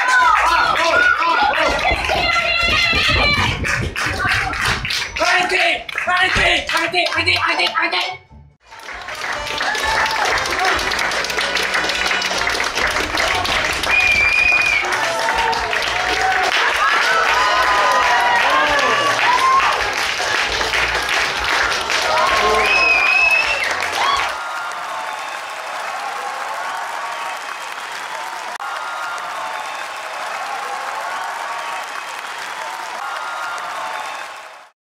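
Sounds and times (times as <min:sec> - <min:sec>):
audience applauding and cheering: 0:00.0 - 0:34.8.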